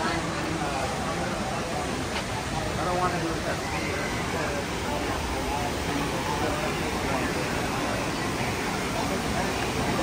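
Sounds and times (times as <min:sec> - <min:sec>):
indistinct chatter of people: 0:00.0 - 0:10.0
whitewater rushing: 0:00.0 - 0:10.0.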